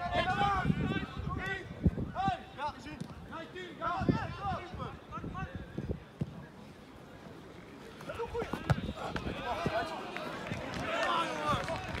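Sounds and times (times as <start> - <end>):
ball being kicked: 8.4 - 9.3.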